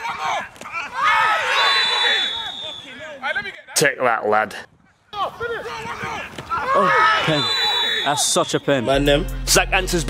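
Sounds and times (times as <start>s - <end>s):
men shouting: 0.0s - 3.3s, 5.2s - 8.2s.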